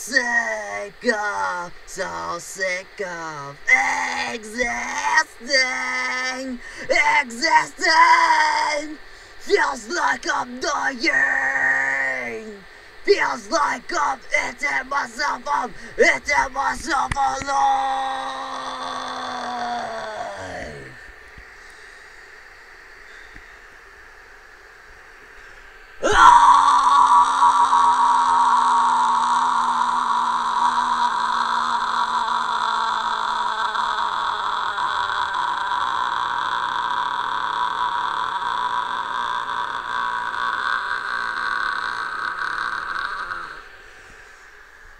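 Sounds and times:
man screaming a long note: 3.7s - 21.0s, 26.0s - 43.7s.

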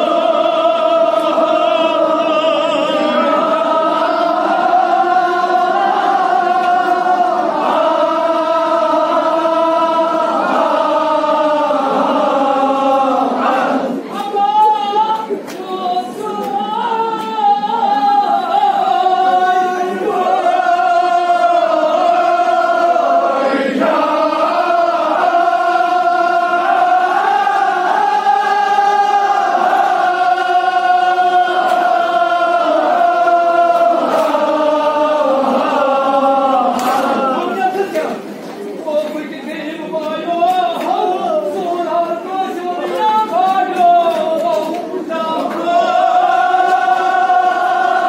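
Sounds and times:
men chanting in unison: 0.0s - 38.4s, 39.3s - 48.0s.

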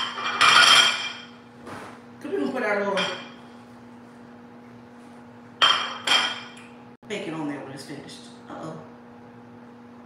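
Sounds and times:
glass clink: 0.0s - 1.4s, 5.6s - 6.6s.

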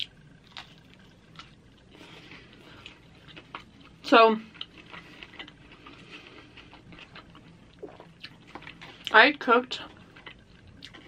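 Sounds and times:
chewing crisp pizza: 0.0s - 11.0s.

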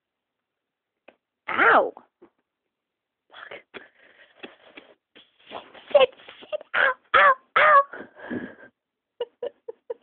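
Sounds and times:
cat fur rustling against microphone: 4.3s - 6.7s.

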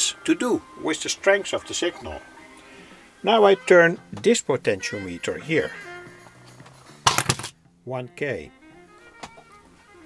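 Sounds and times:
faint music through loudspeaker: 0.0s - 10.0s
clatter of sharp knocks: 7.0s - 7.6s.

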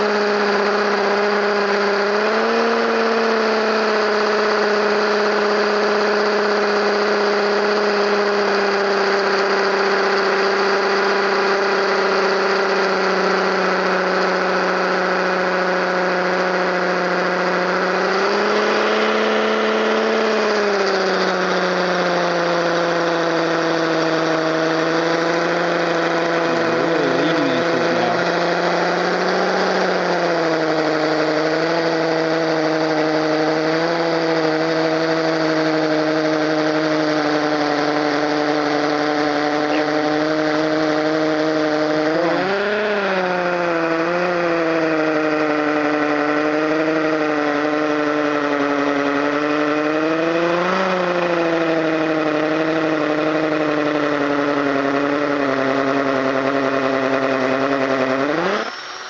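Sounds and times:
hammer drill boring into concrete: 0.0s - 59.0s.

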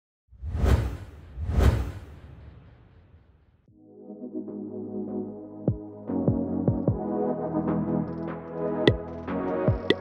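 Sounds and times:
whoosh sound effects: 0.4s - 3.0s.

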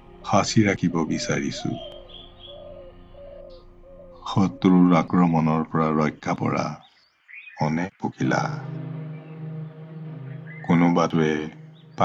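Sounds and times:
bird cooing: 0.9s - 5.5s.

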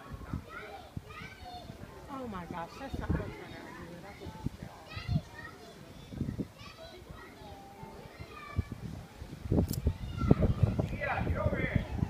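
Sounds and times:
distant high-pitched voices chattering: 0.0s - 12.0s.

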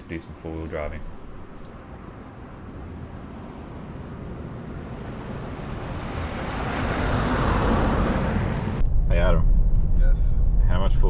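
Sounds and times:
vehicle engine passing: 4.2s - 11.0s.

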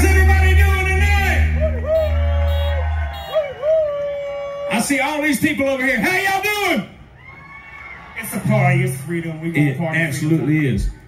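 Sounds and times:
man speaking: 0.0s - 1.7s
low bass note: 0.0s - 3.8s
long rising howl: 0.0s - 4.5s.

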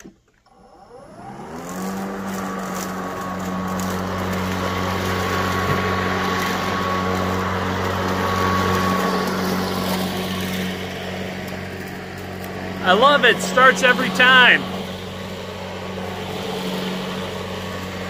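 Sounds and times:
electric lawn mower whining: 0.0s - 18.0s.

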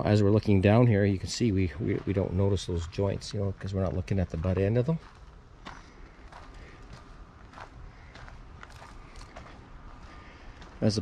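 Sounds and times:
low outdoor background noise: 0.0s - 11.0s
footsteps on dirt: 1.4s - 11.0s.

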